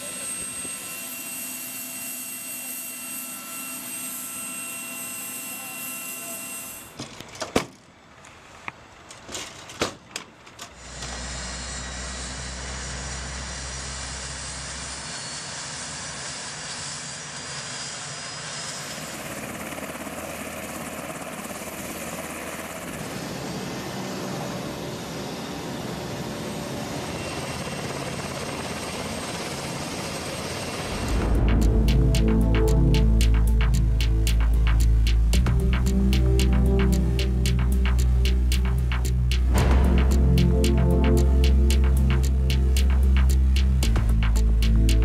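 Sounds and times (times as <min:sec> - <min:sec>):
helicopter running: 0:00.0 - 0:07.0, 0:10.8 - 0:45.0.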